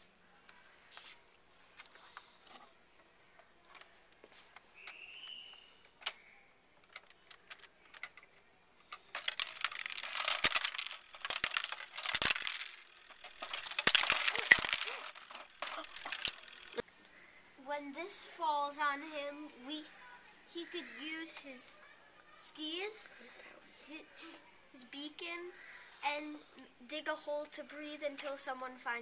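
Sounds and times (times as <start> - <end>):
faint scattered clicks: 3.0 - 17.2
small hard pieces clattering: 8.9 - 16.8.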